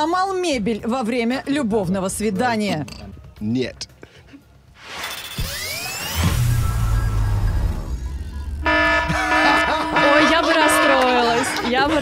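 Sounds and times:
low suspense drone: 5.5s - 11.7s
held horn-like chord: 8.6s - 11.6s.

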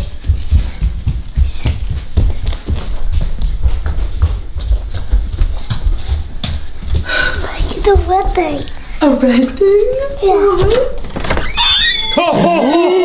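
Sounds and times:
footsteps running on wood floor: 0.0s - 11.1s.

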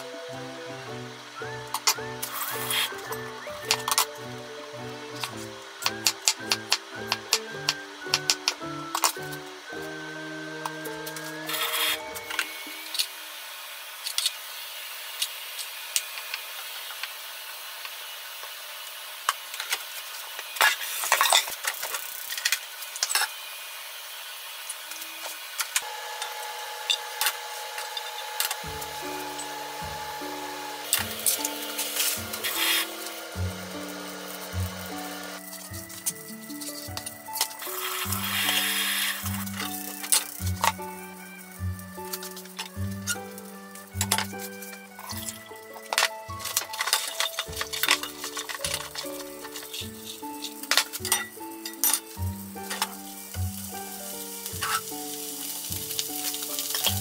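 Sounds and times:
background music: 0.0s - 13.1s, 25.8s - 57.0s
food sizzling in oil: 0.0s - 57.0s.

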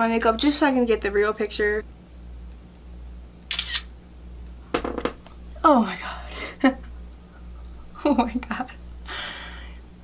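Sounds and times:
phone camera shutter: 3.5s - 3.9s.

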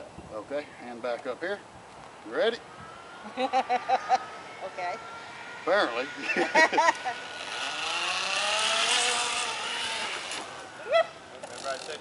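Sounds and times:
zip line pulleys whirring: 5.6s - 12.0s.

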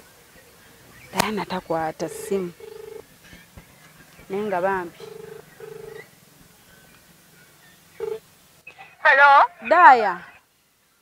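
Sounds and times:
telephone ringback tone: 2.0s - 3.0s, 5.0s - 6.0s, 8.0s - 8.2s.

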